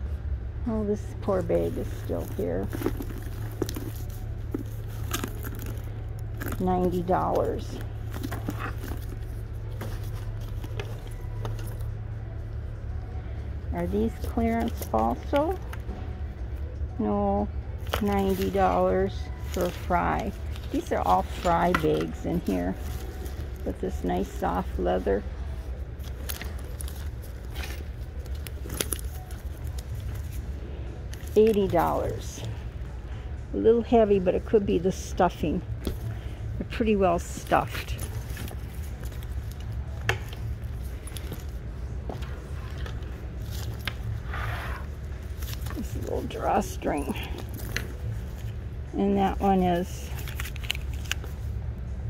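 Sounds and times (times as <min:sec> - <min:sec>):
steady low hum: 0:00.0 - 0:52.0
steady low rumble: 0:00.0 - 0:52.0
handbag rustling: 0:01.2 - 0:12.4, 0:17.8 - 0:32.9, 0:35.3 - 0:51.6.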